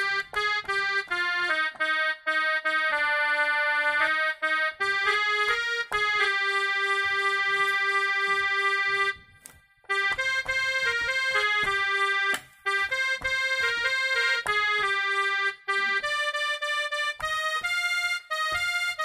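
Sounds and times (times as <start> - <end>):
mini keyboard melody: 0.0 - 19.0.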